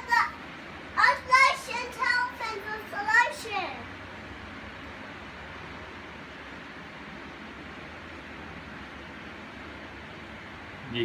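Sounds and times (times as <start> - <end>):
electric fans running: 0.0 - 11.0.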